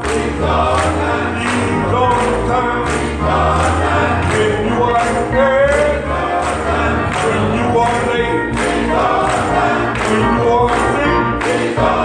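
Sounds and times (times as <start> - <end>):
group singing along: 0.0 - 12.0
man singing into microphone: 1.3 - 3.2, 4.0 - 8.7, 9.9 - 12.0.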